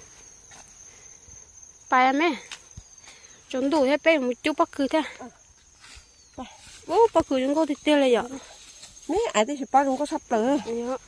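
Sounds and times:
insects trilling: 0:00.0 - 0:11.0
woman speaking: 0:01.9 - 0:02.5, 0:03.5 - 0:05.4, 0:06.4 - 0:11.0.

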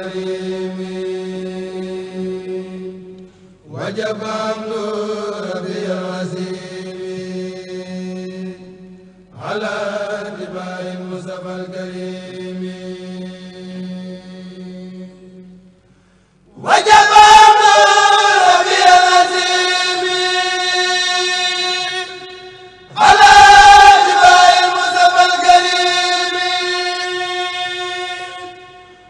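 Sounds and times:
men chanting: 0:03.7 - 0:08.3, 0:09.4 - 0:14.9, 0:16.6 - 0:29.0.

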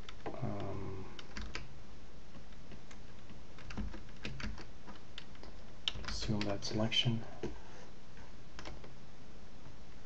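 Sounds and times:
computer keyboard and mouse clicks: 0:00.0 - 0:01.7, 0:02.3 - 0:06.6, 0:08.6 - 0:09.0
faint steady hum: 0:00.0 - 0:10.0.

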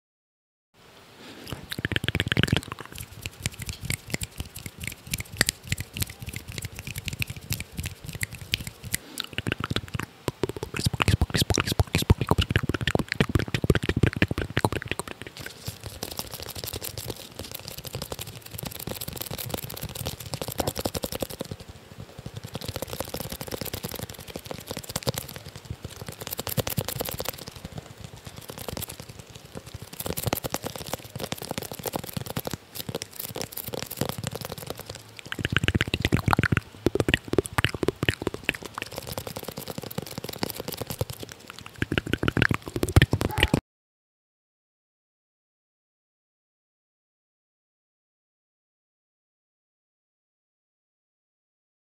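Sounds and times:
fingers scratching on microphone: 0:01.4 - 0:43.6.

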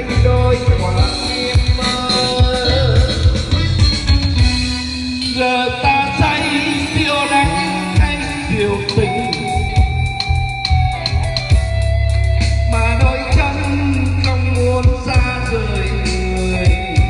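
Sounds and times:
keyboard: 0:00.0 - 0:17.0
lead guitar: 0:00.0 - 0:17.0
low bass notes: 0:00.0 - 0:17.0
person singing: 0:00.0 - 0:17.0
steady drum beat: 0:00.0 - 0:17.0.

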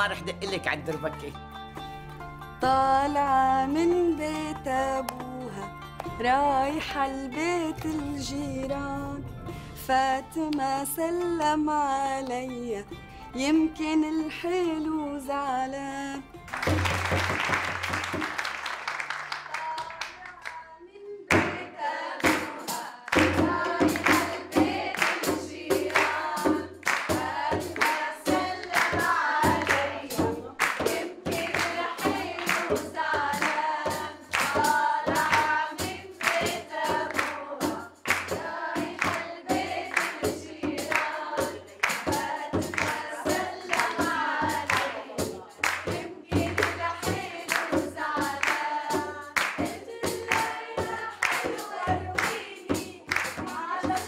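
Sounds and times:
hand drums beating: 0:16.5 - 0:18.6, 0:22.2 - 0:54.0
women singing in chorus: 0:19.5 - 0:54.0.

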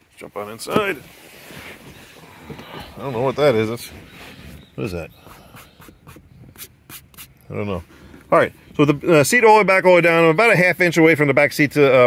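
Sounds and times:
soft bumps: 0:00.5 - 0:06.9
clothing brushing on cloth seats: 0:00.8 - 0:04.9.

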